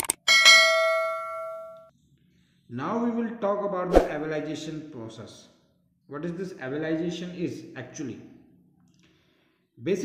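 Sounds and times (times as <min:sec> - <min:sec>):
bell chime: 0:00.3 - 0:01.9.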